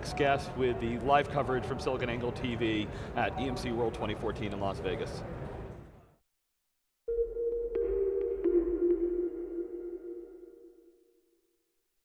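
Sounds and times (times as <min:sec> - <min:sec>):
held synth tone: 0:07.1 - 0:11.4.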